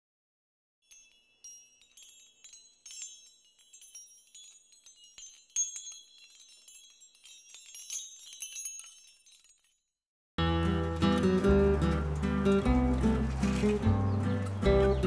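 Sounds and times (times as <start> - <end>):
small chimes tinkling: 0.8 - 10.0.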